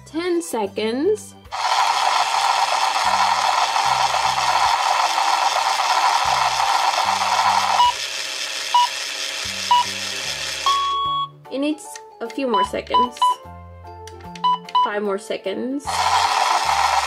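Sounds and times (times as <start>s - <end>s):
toy blender whirring: 1.5s - 11.0s, 15.9s - 17.0s
timer beeps: 7.6s - 8.0s, 9.7s - 10.0s, 10.6s - 11.4s, 12.5s - 13.4s, 14.4s - 14.9s.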